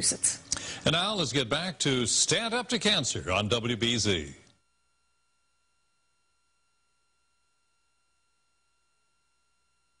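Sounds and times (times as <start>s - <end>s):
faint electrical hum and hiss: 0.0s - 5.5s.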